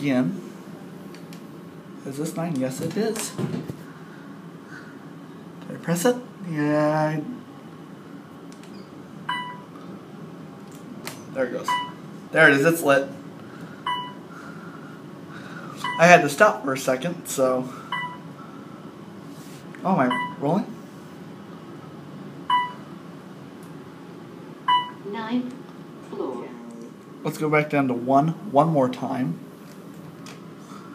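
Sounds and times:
elevator hum: 0:00.0 - 0:30.9
elevator button beep: 0:09.3 - 0:09.7, 0:11.7 - 0:12.0, 0:13.9 - 0:14.2, 0:15.8 - 0:16.1, 0:17.9 - 0:18.3, 0:20.1 - 0:20.4, 0:22.5 - 0:22.8, 0:24.7 - 0:25.0.

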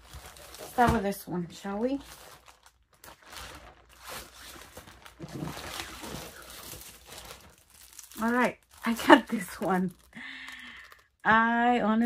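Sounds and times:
plastic bag crinkling: 0:00.0 - 0:11.2.

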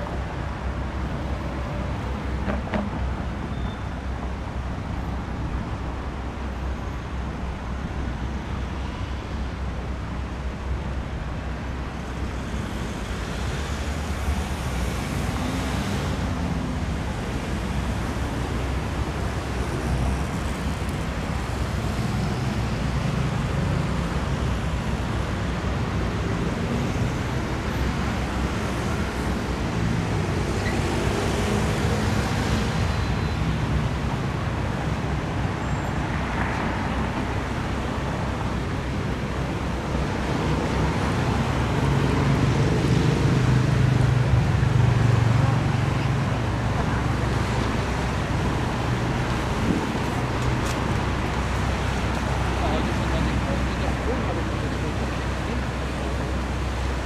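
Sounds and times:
city traffic rumble: 0:00.0 - 0:57.0.

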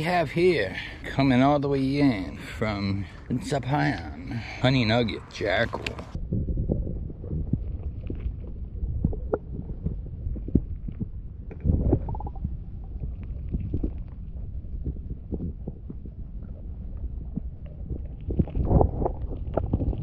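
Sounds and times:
low underwater rumble: 0:00.0 - 0:20.0.

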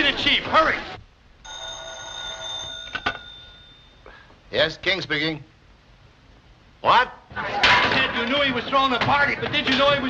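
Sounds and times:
telephone bell ringing: 0:01.4 - 0:04.0.

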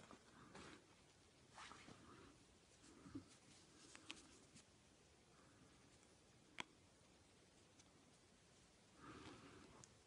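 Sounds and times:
faint rustles of yarn: 0:00.0 - 0:06.1.

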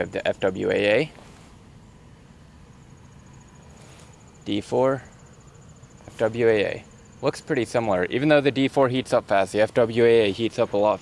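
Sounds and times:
crickets chirping: 0:00.0 - 0:11.0
low background rumble: 0:00.0 - 0:11.0.

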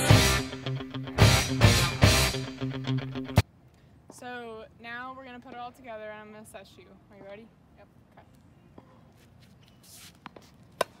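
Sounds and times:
tennis racket striking ball: 0:10.2 - 0:11.0.

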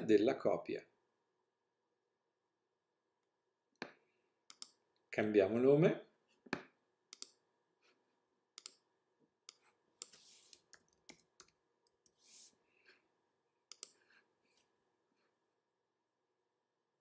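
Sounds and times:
computer mouse clicks: 0:03.8 - 0:04.8, 0:06.5 - 0:07.4, 0:08.6 - 0:08.8, 0:09.5 - 0:12.2, 0:13.7 - 0:14.0
keyboard typing: 0:09.5 - 0:12.2.

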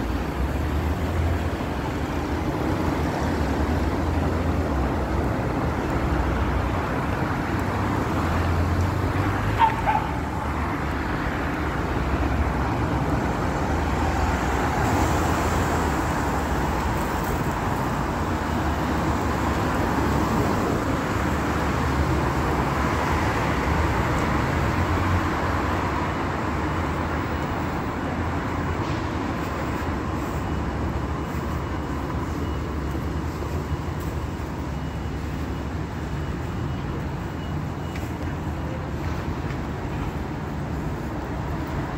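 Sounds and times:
city traffic rumble: 0:00.0 - 0:41.9
vehicles driving past: 0:00.0 - 0:41.9.

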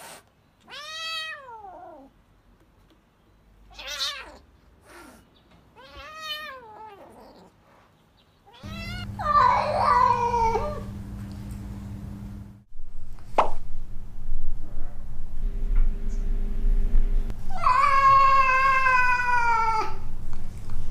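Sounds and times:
kitten meowing: 0:05.8 - 0:07.5, 0:08.5 - 0:10.9, 0:17.5 - 0:20.0
steady low hum: 0:08.6 - 0:20.9.

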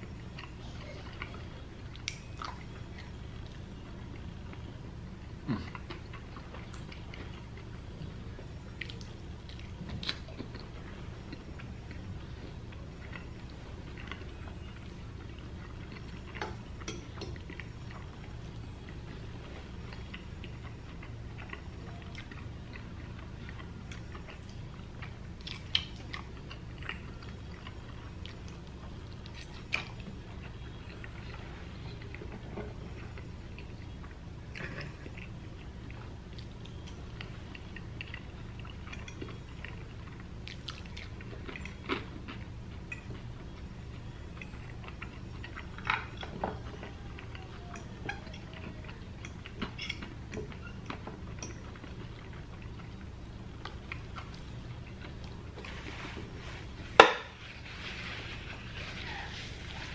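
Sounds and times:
chewing and wet mouth sounds: 0:00.0 - 0:59.9
steady low hum: 0:00.0 - 0:59.9.

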